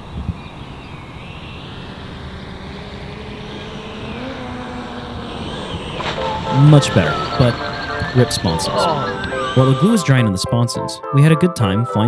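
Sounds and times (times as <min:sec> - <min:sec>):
electric jet motor whining: 0:00.0 - 0:10.4.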